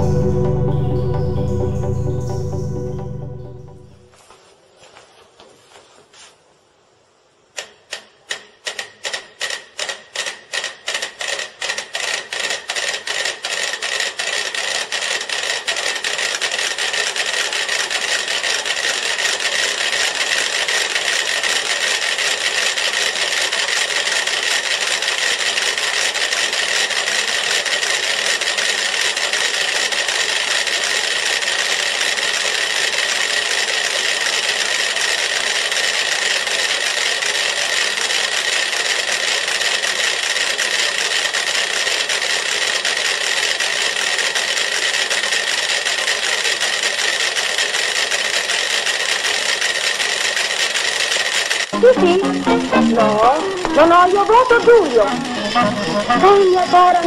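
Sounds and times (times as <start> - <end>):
many metronomes ticking: 51.8 - 57.0.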